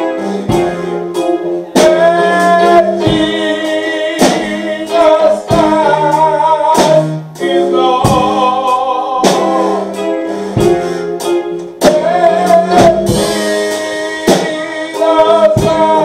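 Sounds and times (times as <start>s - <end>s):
drum kit hits: 0.0s - 16.0s
held keyboard chords: 0.0s - 16.0s
person singing: 0.0s - 16.0s.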